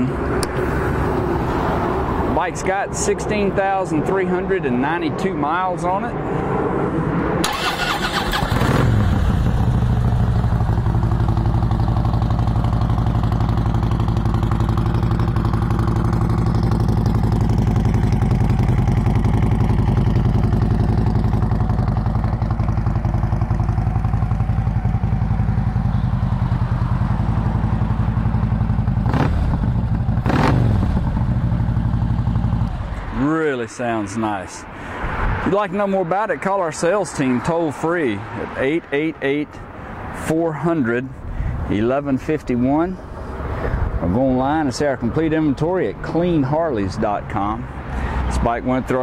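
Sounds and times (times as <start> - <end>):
motorcycle starter cranking: 7.4 - 9.1
motorcycle engine idling: 7.5 - 32.9.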